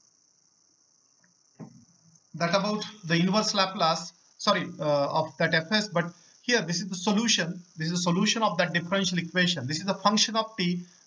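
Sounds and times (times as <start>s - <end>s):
faint high-pitched hiss: 0.0s - 11.0s.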